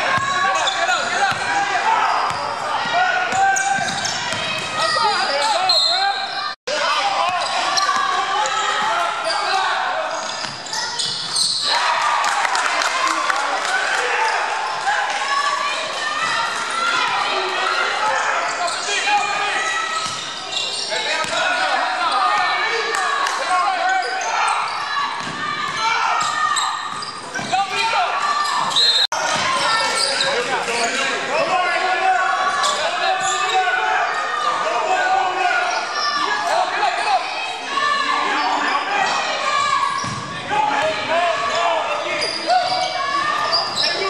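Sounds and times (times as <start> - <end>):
players calling out: 0.0 - 44.0.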